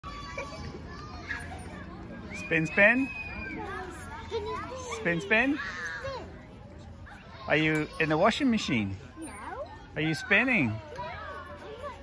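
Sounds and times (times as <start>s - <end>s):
distant children playing: 0.0s - 12.0s.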